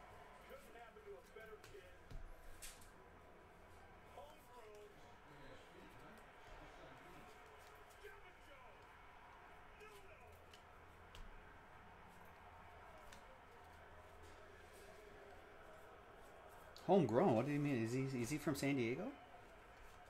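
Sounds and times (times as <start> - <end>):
man's voice: 16.8 - 19.2.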